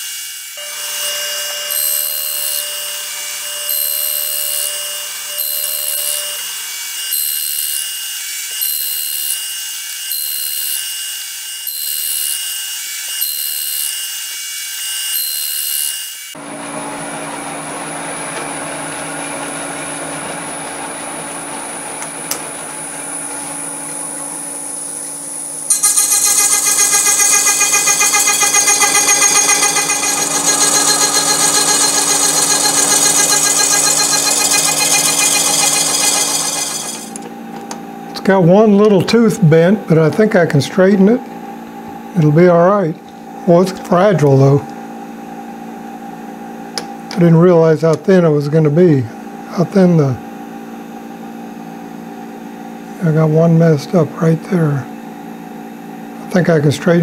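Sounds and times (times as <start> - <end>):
machine hum with high whine: 0.0 - 14.1, 15.0 - 57.0
saw cutting high-pitched: 0.0 - 20.5, 22.7 - 37.2.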